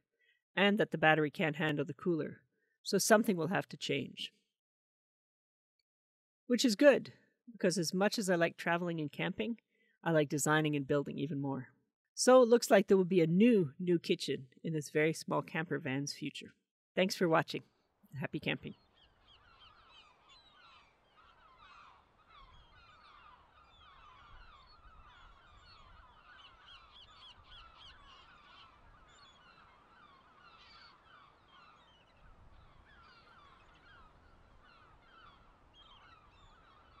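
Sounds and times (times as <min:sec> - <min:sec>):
flock of birds calling: 0:18.8 - 0:37.0.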